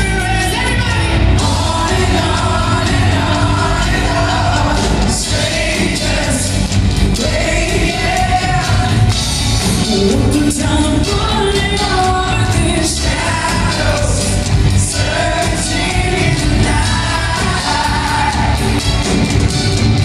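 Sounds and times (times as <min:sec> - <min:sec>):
drums: 0:00.0 - 0:20.0
live rock band with orchestra: 0:00.0 - 0:20.0
vocalists singing together: 0:01.2 - 0:19.2.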